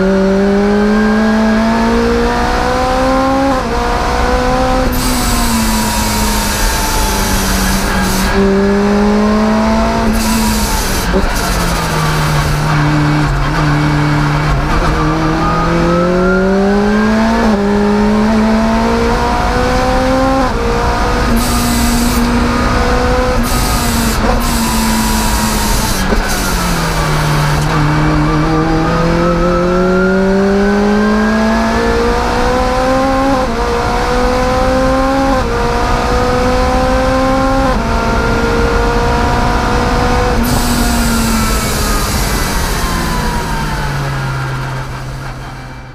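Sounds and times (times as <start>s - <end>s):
car engine revving through gears: 0.0s - 45.9s.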